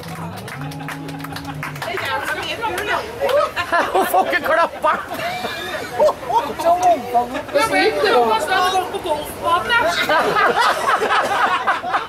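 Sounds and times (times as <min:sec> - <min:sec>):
people talking at once: 0:00.4 - 0:10.9.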